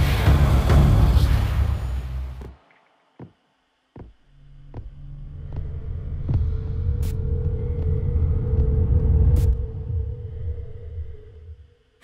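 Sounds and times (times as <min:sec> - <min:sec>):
low throbbing drone: 0:00.0 - 0:02.8, 0:04.3 - 0:12.0.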